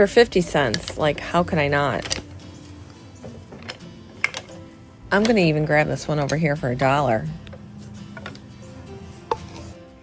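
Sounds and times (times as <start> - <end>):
wooden utensils clacking: 0.0 - 9.8
soft background music: 0.0 - 10.0.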